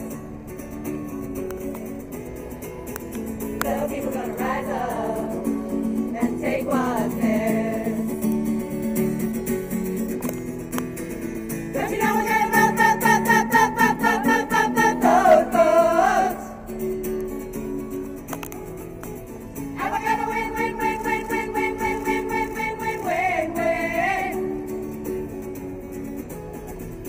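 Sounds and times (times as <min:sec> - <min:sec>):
strummed acoustic guitar: 0:00.0 - 0:27.0
voices singing: 0:03.6 - 0:08.2, 0:11.8 - 0:16.7, 0:19.8 - 0:24.7.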